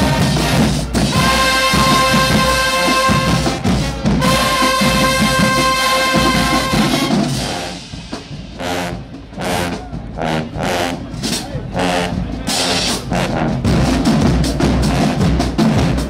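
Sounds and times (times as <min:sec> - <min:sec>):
short brass blasts: 0:00.0 - 0:07.9
brass chord: 0:00.0 - 0:14.0
bass drum: 0:00.0 - 0:16.0.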